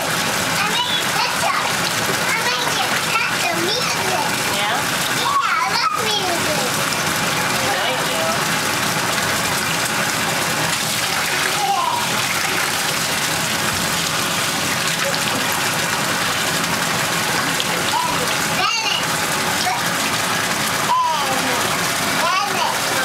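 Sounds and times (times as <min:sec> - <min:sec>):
running water in bath: 0:00.0 - 0:23.0.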